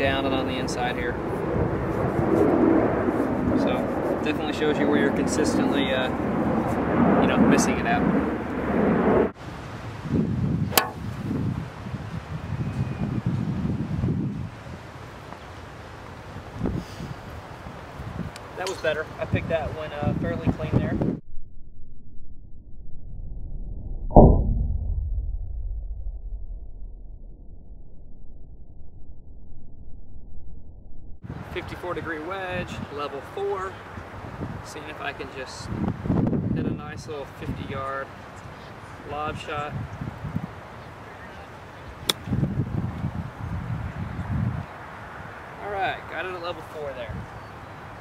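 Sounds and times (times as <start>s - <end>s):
wind on microphone: 0.0s - 15.2s, 16.2s - 21.2s, 31.2s - 45.4s, 47.0s - 48.0s
deep golf club strike: 10.6s - 11.3s, 42.0s - 42.4s
low dull rumble: 20.8s - 31.3s.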